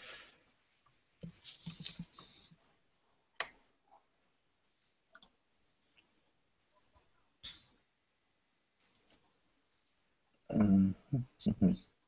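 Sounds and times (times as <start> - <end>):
computer mouse clicks: 5.1 - 5.4.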